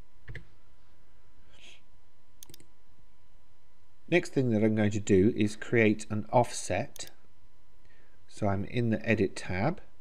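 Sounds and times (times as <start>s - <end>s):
computer mouse clicks: 2.4s - 2.7s, 6.9s - 7.2s.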